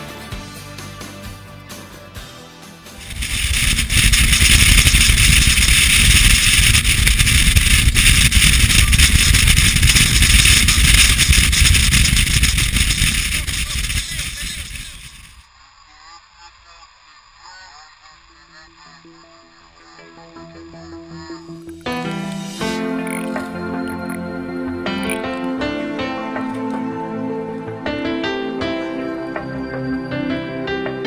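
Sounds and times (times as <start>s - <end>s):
boat engine: 3.0s - 15.4s
loud wind rush over microphone: 3.0s - 15.4s.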